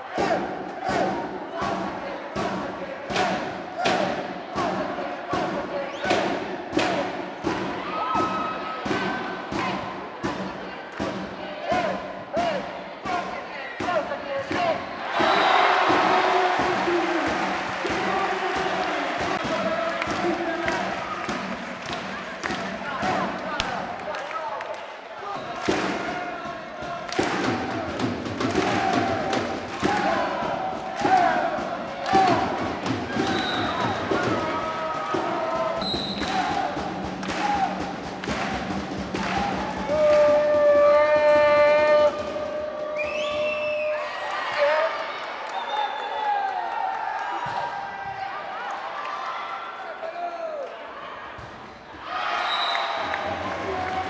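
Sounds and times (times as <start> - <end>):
crowd cheering and chanting: 0.0 - 54.0.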